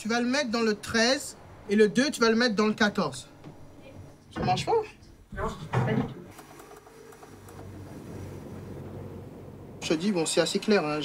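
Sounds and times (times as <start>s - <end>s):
steady low hum: 7.4s - 11.0s.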